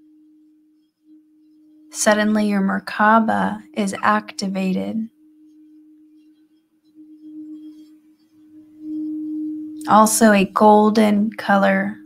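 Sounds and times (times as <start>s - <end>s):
singing bowl sustained tone: 0.0s - 12.0s.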